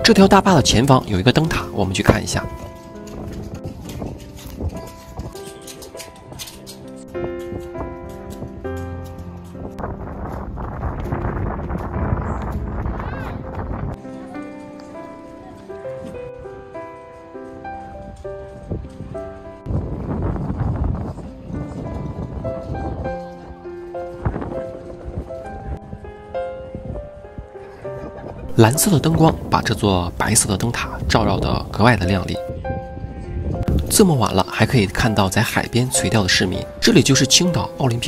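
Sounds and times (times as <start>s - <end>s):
wind rumble on microphone: 0.0s - 5.5s, 6.2s - 14.0s, 17.6s - 38.0s
background music held notes: 0.0s - 38.0s.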